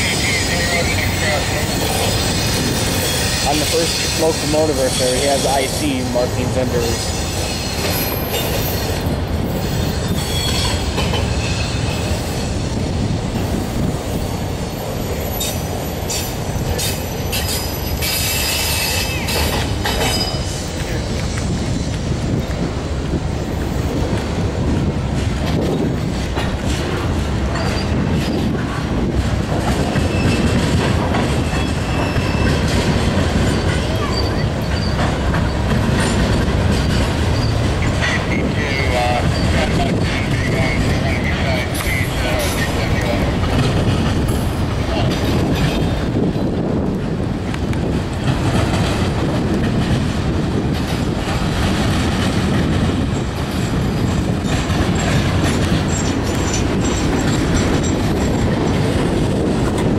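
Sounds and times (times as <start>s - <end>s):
train wheels rumbling on rails: 0.0s - 59.9s
high-pitched wheel squeal: 10.0s - 12.0s, 31.4s - 32.6s, 33.5s - 35.1s.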